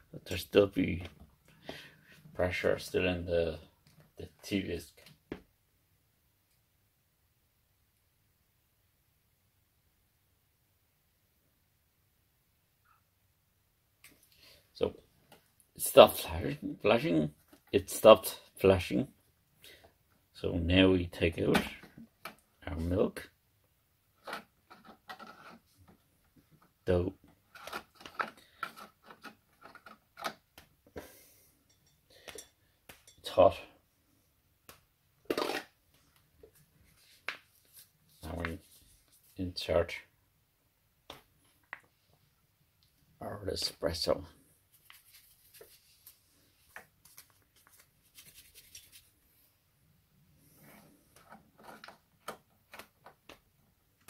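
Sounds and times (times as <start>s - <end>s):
plastic clicks and scrapes: 24.2s - 26.0s, 27.5s - 30.4s, 51.1s - 53.4s.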